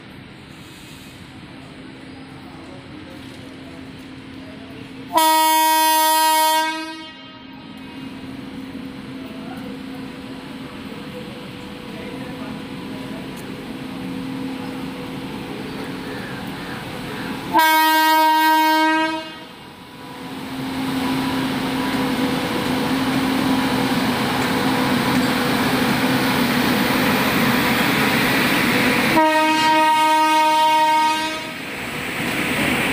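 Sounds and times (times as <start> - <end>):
train rumble and wheel noise: 0.0 - 32.9
locomotive horn blasts: 5.1 - 7.8, 17.5 - 19.6, 29.1 - 31.6.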